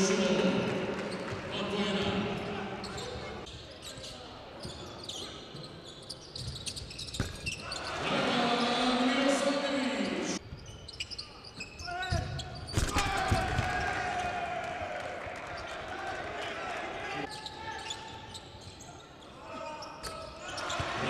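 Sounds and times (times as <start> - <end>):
voices in a hall: 0.0 - 21.0.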